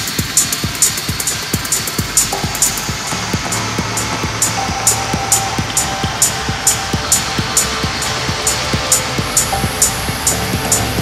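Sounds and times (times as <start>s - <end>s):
open hi-hats: 0.0s - 11.0s
kick drum: 0.1s - 11.0s
sustained synth tone: 1.3s - 11.0s
higher synth tone: 1.7s - 11.0s.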